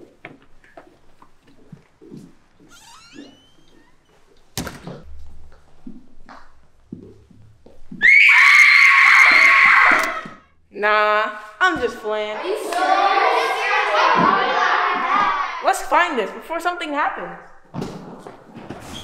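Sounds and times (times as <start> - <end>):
child screaming: 8.0 - 10.4.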